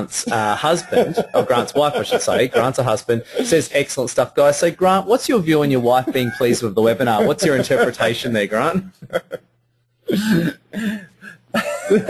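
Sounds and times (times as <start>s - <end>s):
man making wordless sounds: 0.0s - 9.5s.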